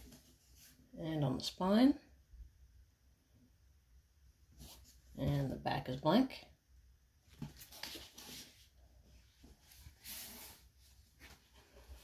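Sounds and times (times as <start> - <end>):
book rustling: 7.3 - 12.0.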